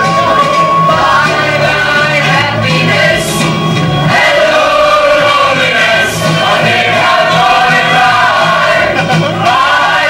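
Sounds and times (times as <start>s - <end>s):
music: 0.0s - 10.0s
two women singing: 0.0s - 10.0s.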